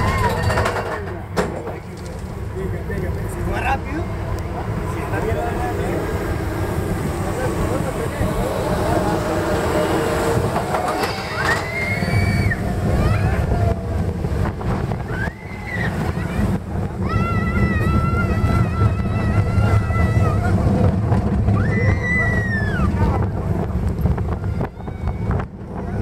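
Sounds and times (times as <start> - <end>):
roller coaster rumbling on track: 0.0 - 26.0
wind buffeting microphone: 0.0 - 26.0
riders screaming: 8.4 - 14.0, 15.0 - 20.8, 21.4 - 23.4.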